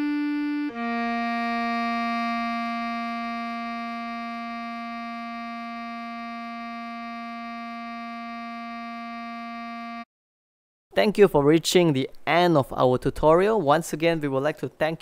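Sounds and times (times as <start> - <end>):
bass clarinet long note: 0.0 - 10.1.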